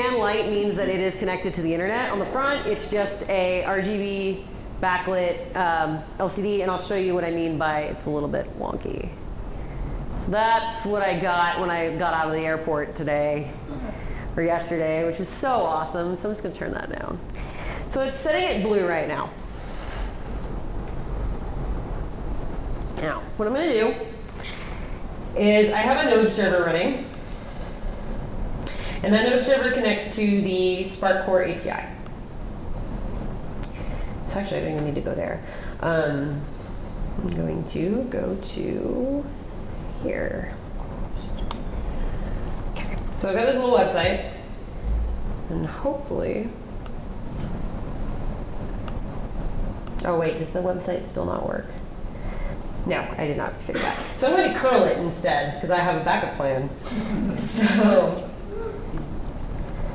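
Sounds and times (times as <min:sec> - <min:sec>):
low room noise rumble: 0:00.0 - 0:59.9
low microphone rumble: 0:44.0 - 0:49.8.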